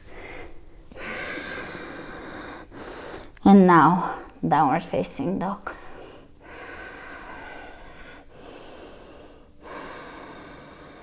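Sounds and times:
woman breathing slowly: 0.0 - 3.4, 5.7 - 11.0.

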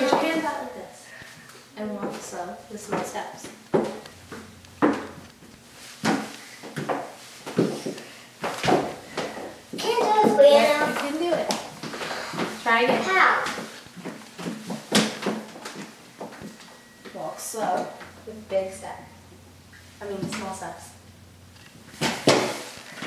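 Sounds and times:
heeled footsteps on hardwood floor: 1.9 - 18.3
child's voice: 9.8 - 11.4.

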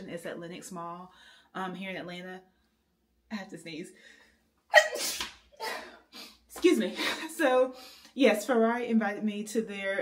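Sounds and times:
woman sneezing: 4.7 - 6.4.

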